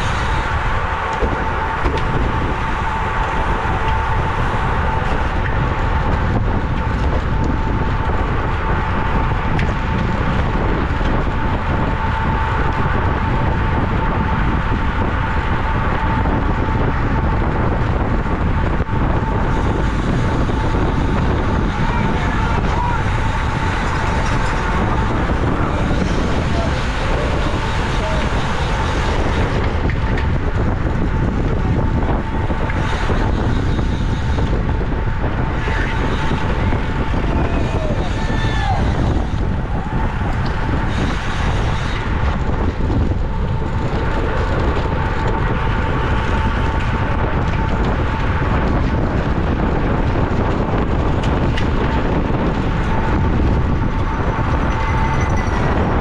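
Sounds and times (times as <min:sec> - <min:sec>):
bicycle tyre and road noise: 0:00.0 - 0:56.0
steady high hum: 0:00.0 - 0:56.0
wind rushing over microphone: 0:00.0 - 0:56.0.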